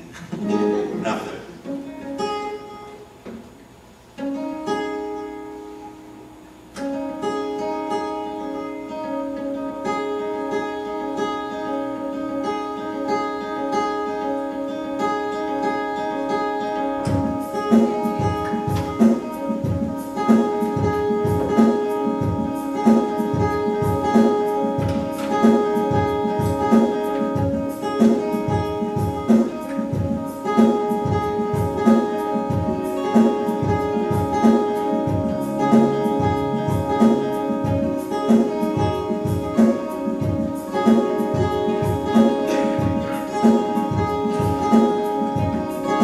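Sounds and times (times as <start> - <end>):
looped beat of low knocks: 17.1 - 45.7.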